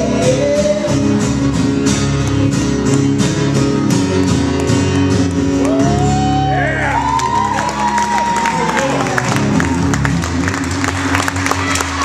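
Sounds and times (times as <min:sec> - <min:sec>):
acoustic guitar strumming: 0:00.0 - 0:12.0
audience whooping and clapping: 0:05.5 - 0:12.0.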